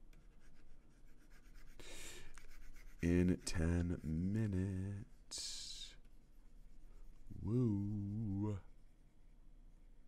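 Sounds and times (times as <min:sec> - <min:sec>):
stylus scratching tablet surface: 0:00.2 - 0:01.8, 0:02.4 - 0:08.4.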